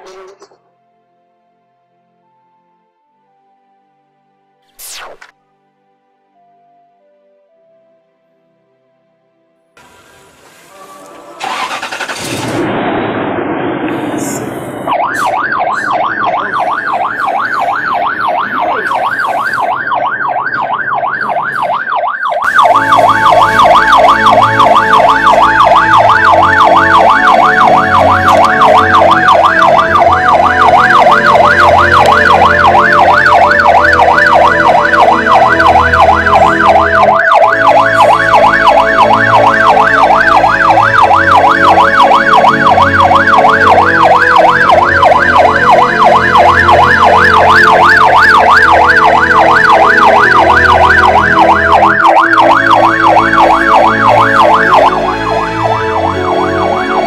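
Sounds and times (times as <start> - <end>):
siren yelping: 10.7 - 12.4, 14.2 - 57.0.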